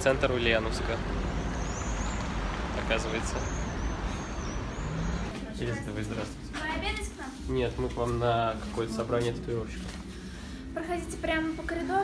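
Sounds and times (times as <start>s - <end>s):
city street traffic: 0.0s - 6.5s.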